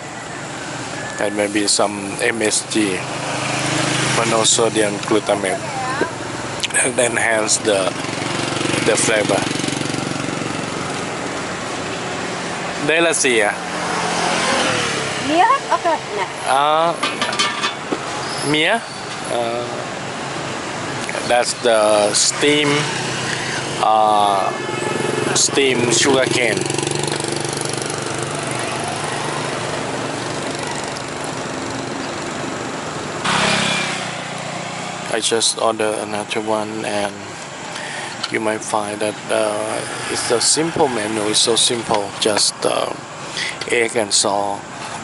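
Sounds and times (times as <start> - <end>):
motorbike and scooter traffic: 0.0 - 45.0
rush of traffic noise: 0.0 - 45.0
street noise: 0.0 - 45.0
small engine running: 6.8 - 11.0, 25.0 - 32.4.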